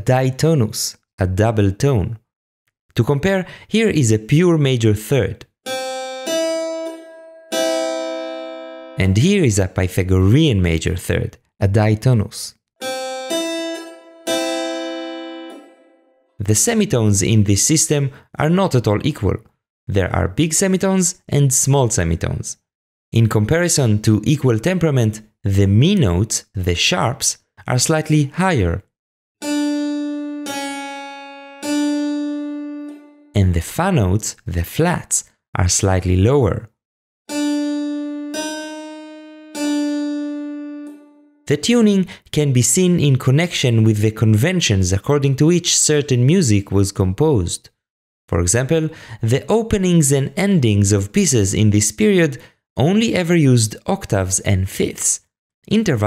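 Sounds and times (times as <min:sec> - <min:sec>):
keyboard two-note chord: 0:05.7 - 0:09.0, 0:12.8 - 0:16.3, 0:29.4 - 0:33.3, 0:37.3 - 0:41.3.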